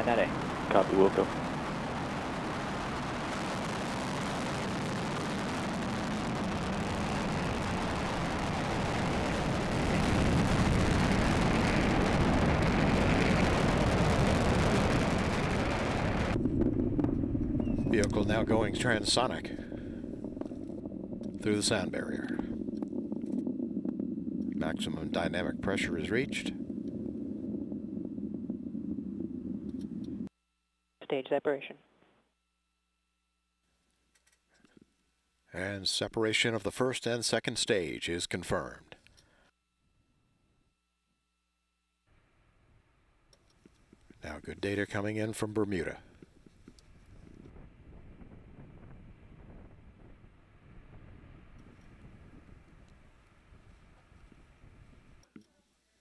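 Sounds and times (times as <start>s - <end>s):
distant rocket exhaust rumble: 0.0s - 30.3s, 43.6s - 55.3s.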